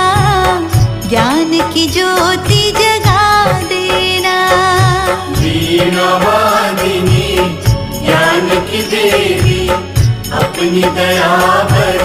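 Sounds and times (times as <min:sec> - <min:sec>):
steady drum beat: 0:00.0 - 0:12.0
woman singing devotional song: 0:00.0 - 0:12.0.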